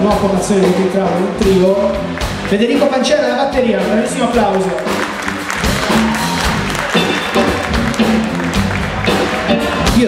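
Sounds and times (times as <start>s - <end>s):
live blues band playing: 0.0s - 10.0s
audience applauding: 4.3s - 10.0s.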